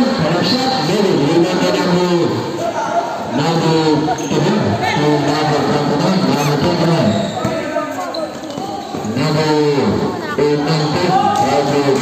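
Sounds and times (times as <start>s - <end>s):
voices of players and spectators: 0.0s - 12.0s.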